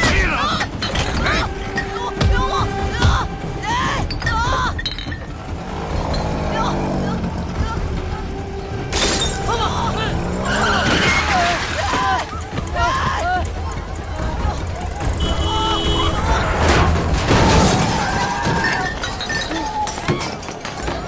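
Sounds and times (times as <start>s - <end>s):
people shouting and yelling: 0.0s - 21.0s
motorcycle crashing: 4.1s - 12.8s, 13.5s - 21.0s
loud crash: 16.2s - 19.0s.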